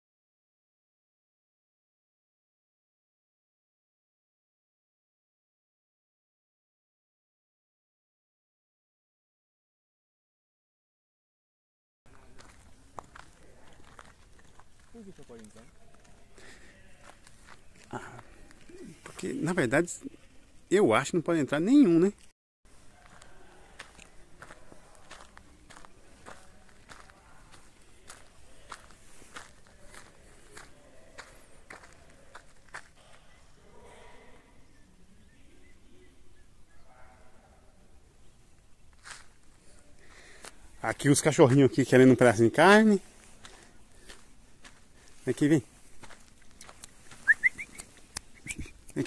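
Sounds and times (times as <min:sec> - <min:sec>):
footsteps on dirt: 0:12.1 - 0:20.6, 0:22.8 - 0:33.2, 0:38.9 - 0:48.9
lip squeaks calling dog: 0:47.2 - 0:48.9.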